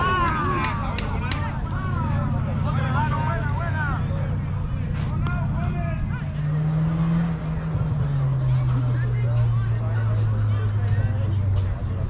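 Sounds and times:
players shouting: 0.0s - 6.6s.

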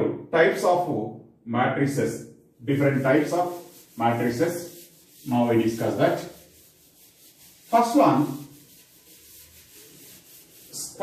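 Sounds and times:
duster rubbing on chalkboard: 2.7s - 11.0s.

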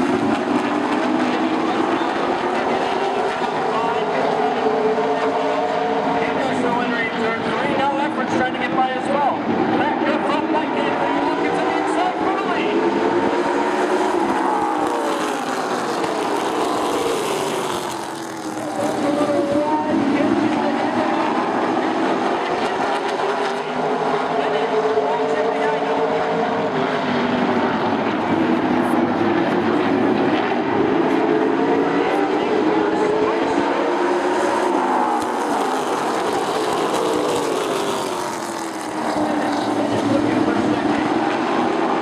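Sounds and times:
stock car engines racing: 0.0s - 42.0s.

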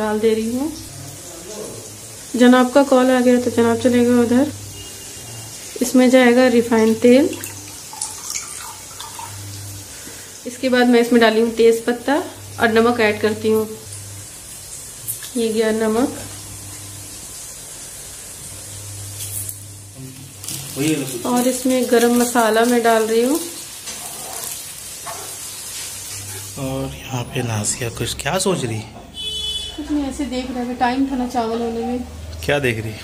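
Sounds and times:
stove hissing: 0.0s - 32.6s
oil trickling into water: 7.2s - 10.1s.

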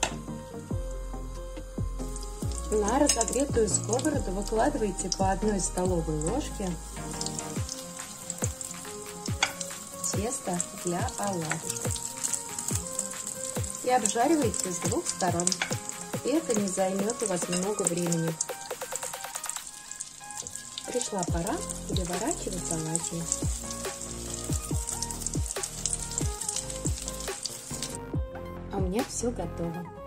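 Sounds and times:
oil sizzling in a pan: 0.0s - 28.1s
background music: 0.0s - 30.0s.

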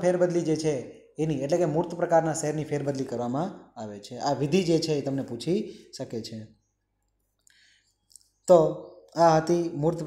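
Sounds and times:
person speaking: 0.0s - 6.6s, 8.0s - 10.0s.

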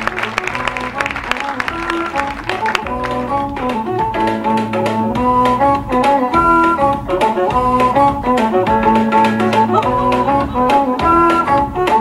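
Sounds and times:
instrumental melody: 0.0s - 12.0s
low bass line: 0.0s - 12.0s.

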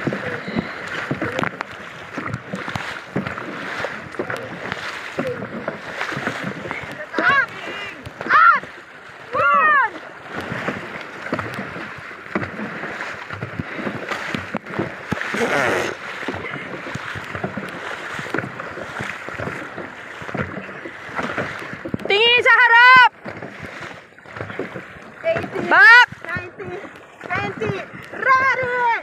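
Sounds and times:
paddles splashing in water: 0.0s - 29.0s
water rushing past hull: 0.0s - 29.0s.

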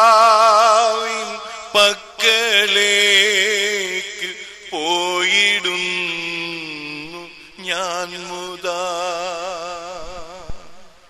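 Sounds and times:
person singing slow funeral song: 0.0s - 11.0s.

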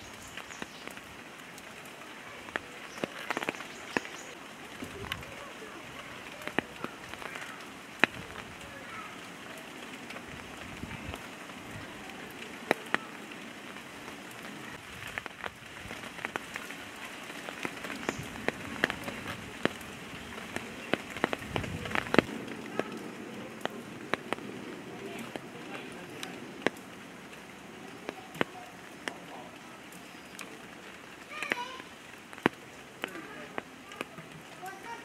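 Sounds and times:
steady rain: 0.0s - 35.0s.

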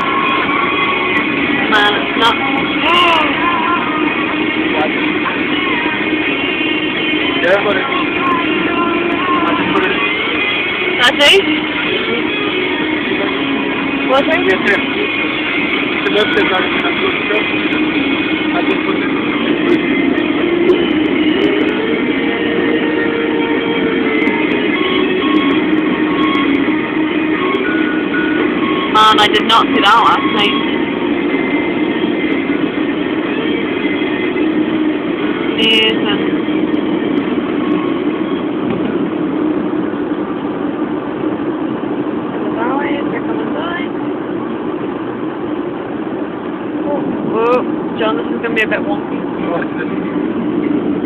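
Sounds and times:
vehicle interior rumble: 0.0s - 51.0s.

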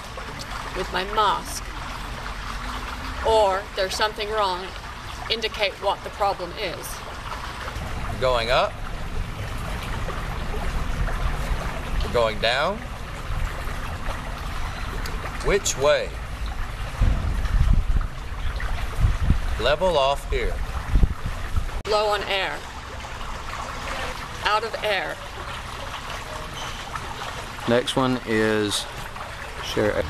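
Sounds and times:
rushing outdoor noise: 0.0s - 30.0s
trickling water: 0.0s - 30.0s
low rumble: 16.3s - 19.6s.

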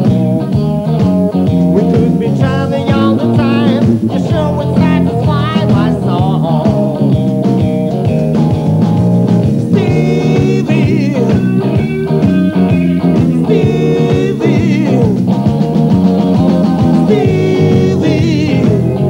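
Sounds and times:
bass: 0.0s - 19.0s
electric guitar lines: 0.0s - 19.0s
steady drum beat: 0.0s - 19.0s.

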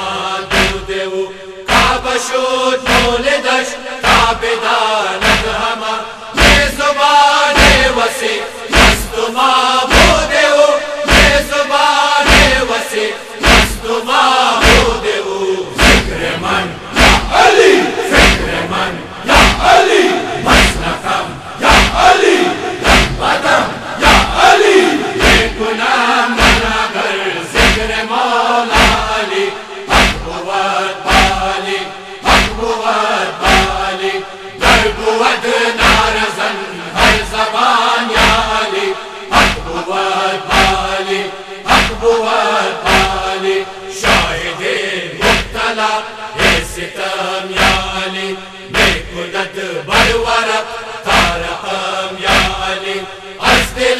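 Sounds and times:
men chanting in unison: 0.0s - 53.9s.

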